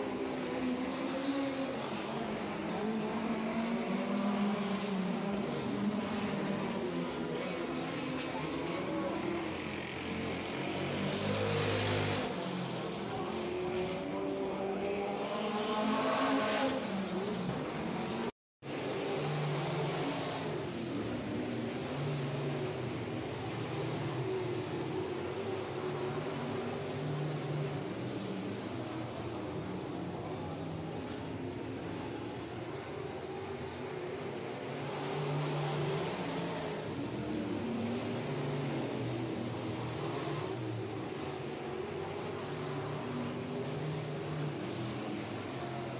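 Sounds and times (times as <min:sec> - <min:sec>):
race car engines revving: 0:00.0 - 0:45.9.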